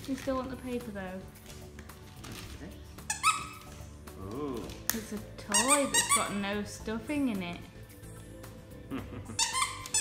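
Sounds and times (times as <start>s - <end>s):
dog toy squeaking: 3.0s - 3.7s, 5.5s - 6.4s, 9.3s - 10.0s.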